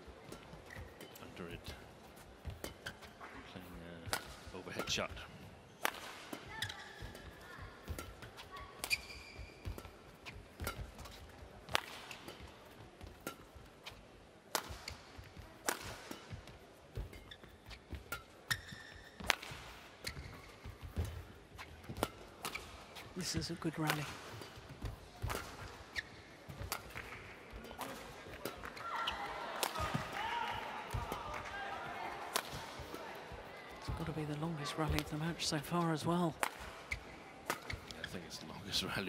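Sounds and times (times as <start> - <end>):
shoes squeaking on court: 0.0 - 3.5, 5.6 - 14.1, 14.8 - 30.1, 32.8 - 38.5
rackets striking shuttlecock: 4.0 - 31.5, 32.1 - 34.0, 36.4 - 38.1.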